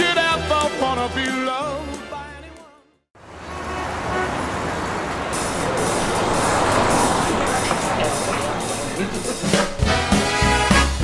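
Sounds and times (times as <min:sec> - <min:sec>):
city street traffic: 0:03.2 - 0:11.0
lively music: 0:05.2 - 0:11.0.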